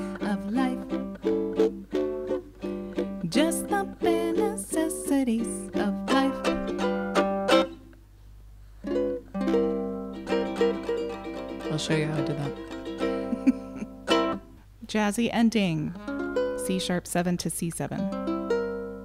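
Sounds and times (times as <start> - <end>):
ukulele strumming chords: 0.0 - 8.0, 8.8 - 14.5, 15.7 - 17.0, 18.0 - 19.0.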